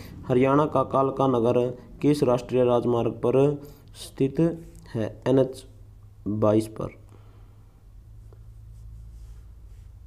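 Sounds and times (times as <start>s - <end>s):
low steady hum: 0.0s - 10.0s
scratchy rubbing on touchscreen: 8.1s - 10.0s.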